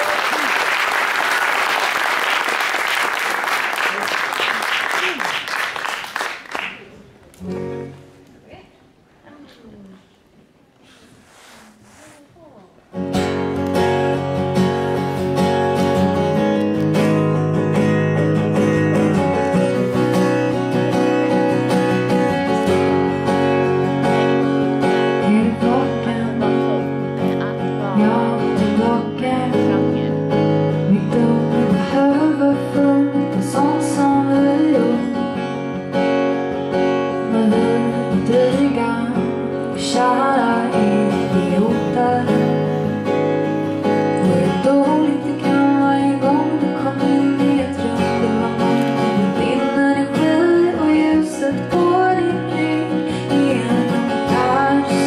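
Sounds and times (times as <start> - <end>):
strummed acoustic guitar: 7.4 - 8.2, 12.9 - 55.0
woman singing: 25.0 - 35.6, 37.1 - 42.9, 44.2 - 55.0.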